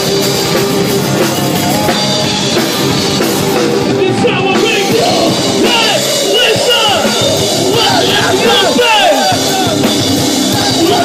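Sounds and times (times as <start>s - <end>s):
heavy metal band playing: 0.0s - 11.0s
yelled vocals: 0.0s - 11.0s.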